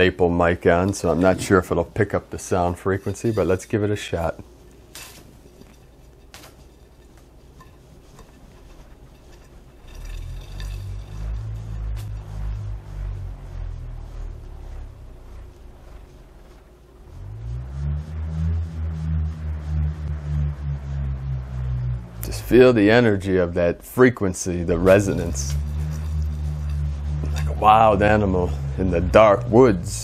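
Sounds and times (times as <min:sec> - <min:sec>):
bullroarer pulsing hum: 0:00.0 - 0:30.0.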